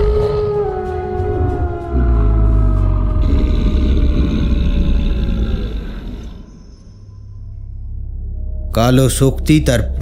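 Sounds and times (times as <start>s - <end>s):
beast howl: 0.0s - 6.6s
deep rumbling drone: 0.0s - 10.0s.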